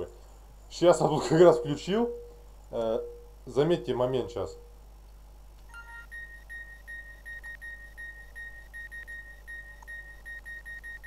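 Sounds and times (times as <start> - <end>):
low steady electronic tone: 1.1 - 4.9, 5.7 - 11.0.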